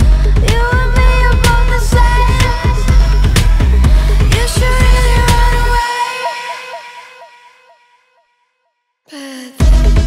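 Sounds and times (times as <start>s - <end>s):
electronic pop music bass: 0.0s - 7.0s, 9.6s - 10.0s.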